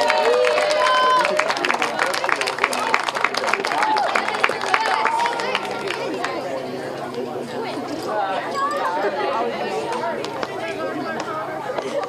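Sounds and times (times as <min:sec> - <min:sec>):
hand claps: 0:00.0 - 0:06.4, 0:09.9 - 0:12.0
people chatting: 0:00.0 - 0:12.0.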